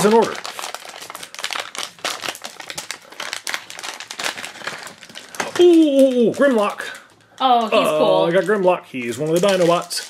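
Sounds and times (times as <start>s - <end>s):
foil pouch crinkling: 0.0s - 10.0s.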